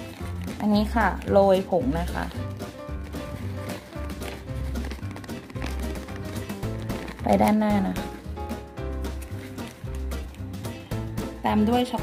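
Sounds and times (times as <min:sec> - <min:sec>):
music with a regular beat: 0:01.8 - 0:12.0.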